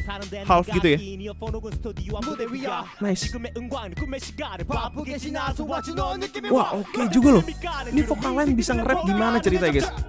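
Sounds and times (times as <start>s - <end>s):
hip-hop beat with deep bass: 0.0s - 10.0s
man rapping: 0.0s - 10.0s.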